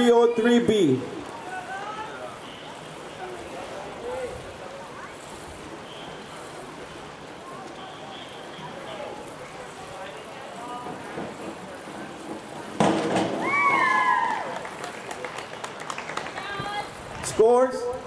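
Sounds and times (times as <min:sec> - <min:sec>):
faint chatter of voices: 0:01.0 - 0:12.8
splash into pool water: 0:12.6 - 0:16.8.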